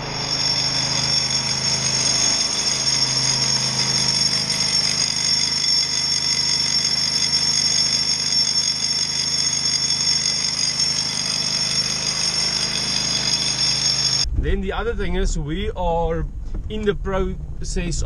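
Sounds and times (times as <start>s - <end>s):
breaker hammer chipping concrete: 0.0s - 14.2s
generator running: 0.0s - 14.3s.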